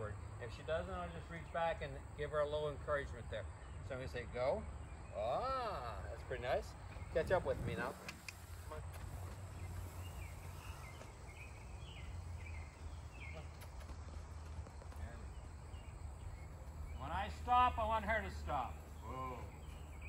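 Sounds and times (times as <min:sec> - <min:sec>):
low outdoor hum: 0:00.0 - 0:20.0
hoof steps on dirt: 0:08.0 - 0:11.7, 0:12.5 - 0:16.9.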